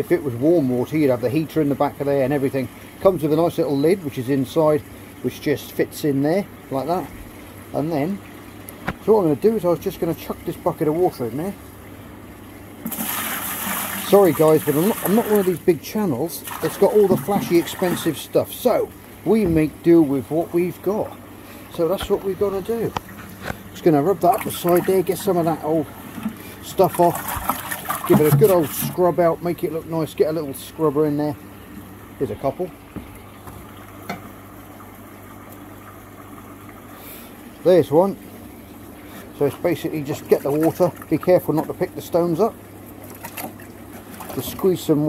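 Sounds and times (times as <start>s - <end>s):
pond pump humming: 0.0s - 45.0s
water pouring into glass tank: 6.6s - 36.9s.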